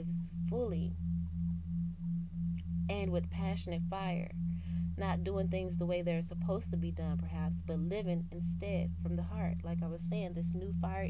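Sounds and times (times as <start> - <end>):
low steady drone: 0.0 - 11.0
pulsing hum: 0.0 - 11.0.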